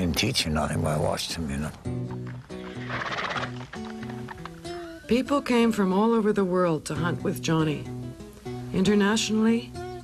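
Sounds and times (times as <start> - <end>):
background music of held notes: 0.2 - 10.0
horse neighing: 2.4 - 4.9.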